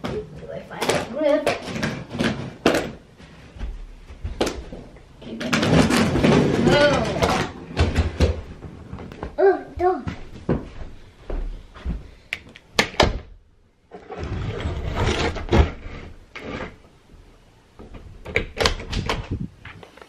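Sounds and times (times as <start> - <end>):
carpet knocks and thumps: 2.0 - 5.0, 5.8 - 12.1
carpet scraping across floor: 13.9 - 16.9.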